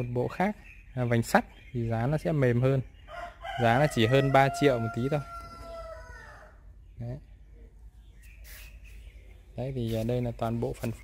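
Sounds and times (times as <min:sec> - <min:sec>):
rooster crowing: 0:03.1 - 0:06.6.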